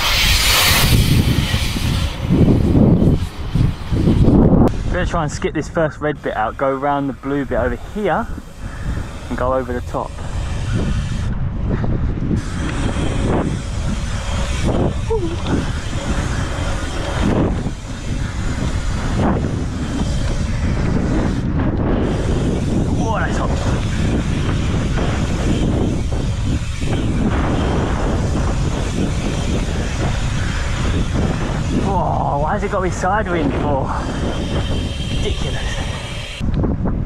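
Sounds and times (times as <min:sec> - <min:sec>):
bicycle tyres rolling on asphalt: 0:00.0 - 0:37.0
wind buffeting microphone: 0:00.0 - 0:37.0.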